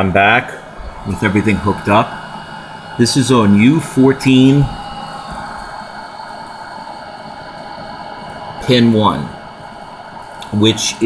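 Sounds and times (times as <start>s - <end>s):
faint hum tones: 0.0s - 11.0s
steady hiss: 0.2s - 11.0s.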